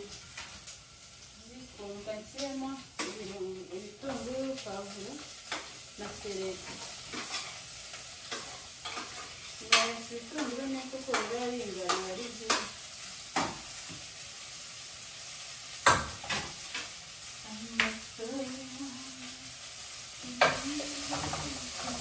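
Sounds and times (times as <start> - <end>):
food sizzling in a pot: 0.0 - 22.0.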